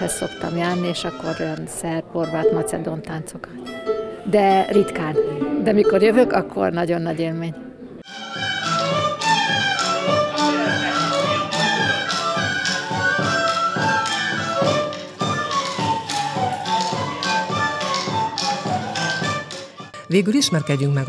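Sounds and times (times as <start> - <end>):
fiddle melody: 0.0 - 3.0, 3.6 - 6.4, 8.0 - 21.0.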